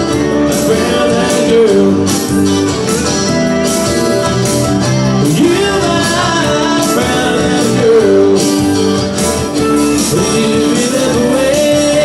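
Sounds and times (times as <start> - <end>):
person singing: 0.0 - 2.6, 5.2 - 9.1, 9.7 - 12.0
electric bass guitar: 0.0 - 12.0
electric guitar: 0.0 - 12.0.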